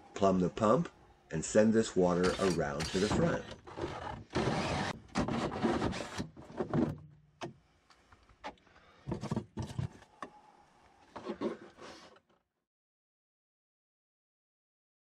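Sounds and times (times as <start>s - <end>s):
drill with hole saw cutting plastic: 2.2s - 6.3s
plastic basin knocks and scrapes: 9.1s - 10.0s.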